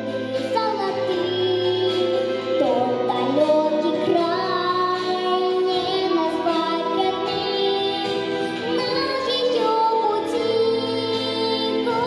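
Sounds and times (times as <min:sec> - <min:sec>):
girl singing into microphone: 0:00.0 - 0:12.0
instrumental backing music: 0:00.0 - 0:12.0.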